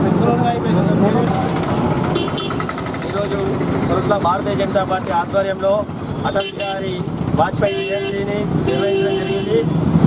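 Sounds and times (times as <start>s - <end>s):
men talking and calling out: 0.0s - 9.8s
street traffic: 0.0s - 10.0s
vehicle engine running: 0.2s - 6.2s.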